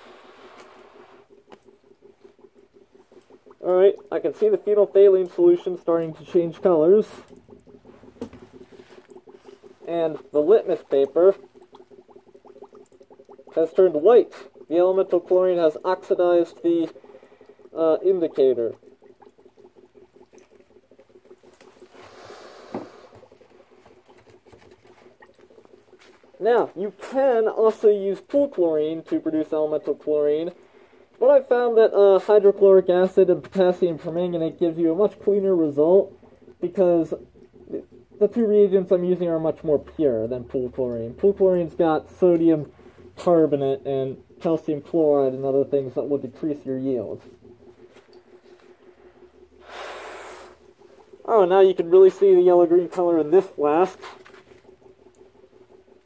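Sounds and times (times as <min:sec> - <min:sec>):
faint steady hum: 0:00.0 - 0:56.0
gas bubbling in liquid: 0:00.0 - 0:56.0.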